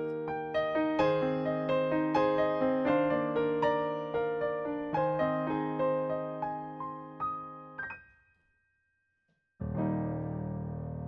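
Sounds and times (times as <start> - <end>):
digital piano notes and chord: 0.0 - 8.0, 9.6 - 11.0.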